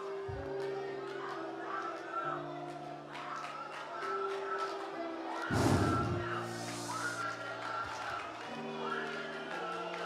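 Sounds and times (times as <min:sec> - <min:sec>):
congregation praying: 0:00.0 - 0:10.0
soft worship music: 0:00.0 - 0:10.0
loud burst of noise: 0:05.5 - 0:06.8.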